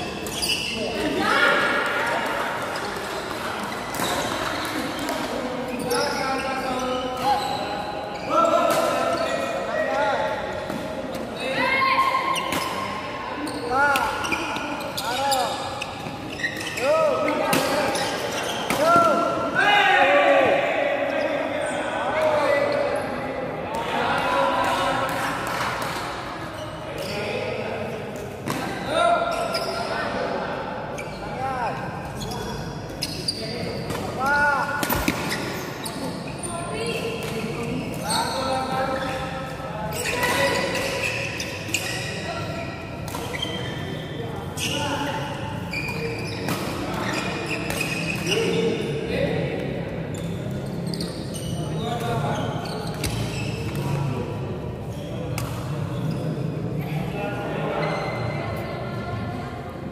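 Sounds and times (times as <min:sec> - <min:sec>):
shoes squeaking on hall floor: 0:00.0 - 0:19.8, 0:21.1 - 0:59.9.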